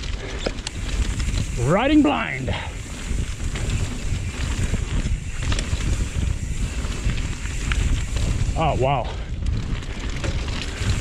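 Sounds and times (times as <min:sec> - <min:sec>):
bike tyres rolling on dirt: 0:00.0 - 0:11.0
wind rumbling on microphone: 0:00.0 - 0:11.0.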